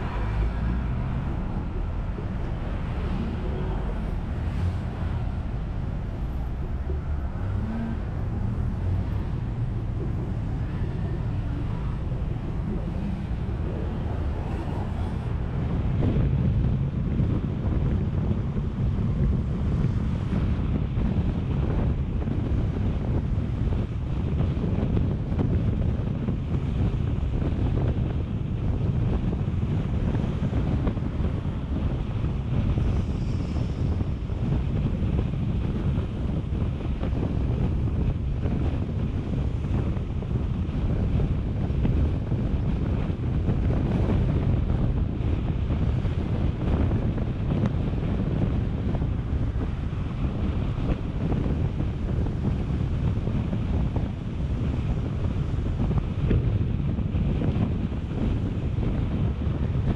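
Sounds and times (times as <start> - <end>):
car road noise: 0.0 - 59.9
wind buffeting microphone: 0.0 - 59.9.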